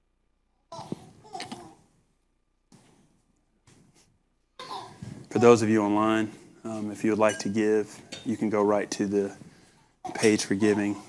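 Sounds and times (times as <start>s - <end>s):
faint rustles: 2.7s - 11.0s.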